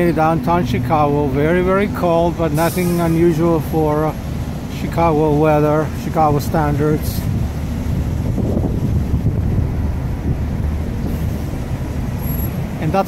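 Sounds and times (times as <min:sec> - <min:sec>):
bus moving: 0:00.0 - 0:13.0
low rumble of cars: 0:00.0 - 0:13.0.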